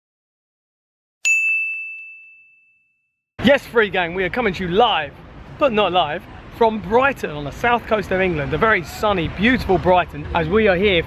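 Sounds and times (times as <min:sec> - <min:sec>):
high bell-like ding: 0:01.3 - 0:03.1.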